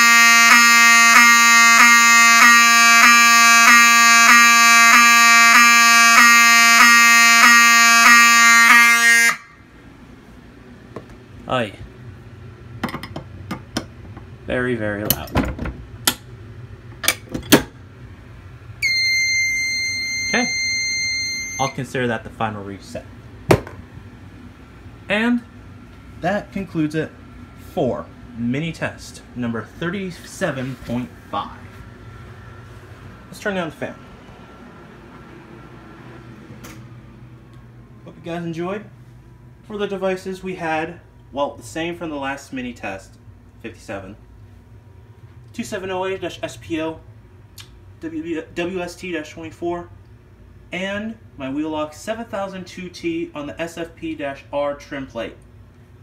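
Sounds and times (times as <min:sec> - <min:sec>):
steady low hum: 0:00.2 - 0:56.0
faint high tone: 0:18.8 - 0:21.8.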